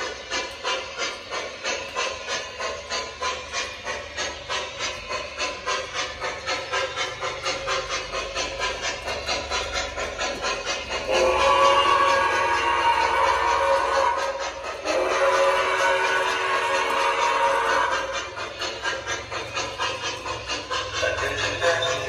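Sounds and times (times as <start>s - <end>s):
electronic steam chuffing: 0.0s - 22.0s
model train rolling rumble: 0.0s - 22.0s.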